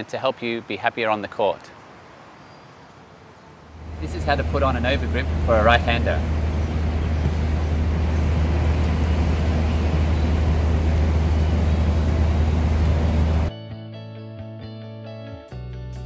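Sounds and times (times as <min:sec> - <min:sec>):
outdoor rumble and hiss: 0:00.0 - 0:13.5.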